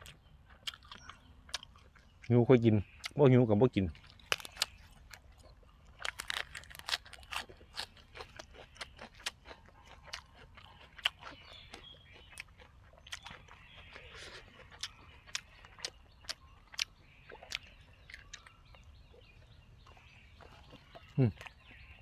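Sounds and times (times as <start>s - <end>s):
man chewing crunchy food: 0.0s - 2.3s, 3.9s - 22.0s.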